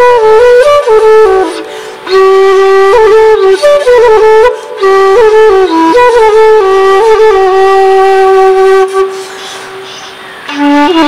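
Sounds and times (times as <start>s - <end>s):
flute long note: 0.0s - 9.9s, 10.5s - 11.0s.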